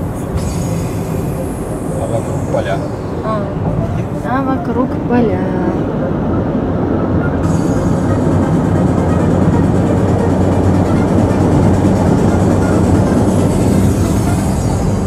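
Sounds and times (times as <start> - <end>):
road and wind noise in car: 0.0 - 15.0.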